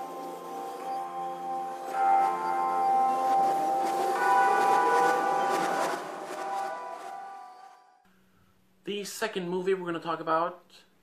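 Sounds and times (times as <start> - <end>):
ringing bell-like chord: 0.0 - 8.0.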